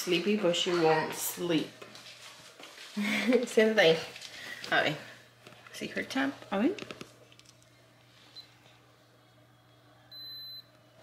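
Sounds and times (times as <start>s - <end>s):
thermometer beep: 10.1s - 10.7s.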